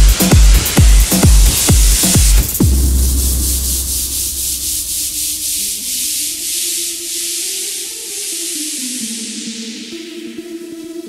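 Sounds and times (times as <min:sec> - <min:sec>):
electronic dance music: 0:00.0 - 0:11.0
deep bass note: 0:00.8 - 0:06.1
pulsing hiss sweeping upward: 0:02.9 - 0:10.3.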